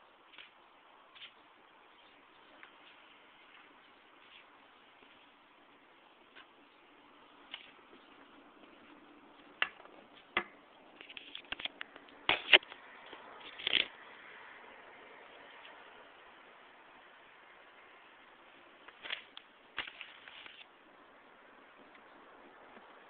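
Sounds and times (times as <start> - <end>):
faint steady hiss: 0.0 - 23.0.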